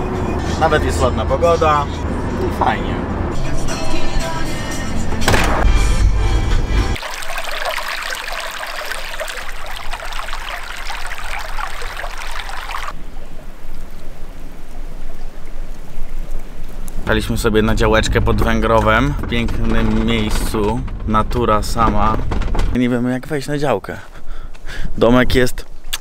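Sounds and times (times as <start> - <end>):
background music: 3.3 - 7.0
stream rushing over branches: 7.0 - 17.3
low rumble: 17.0 - 22.8.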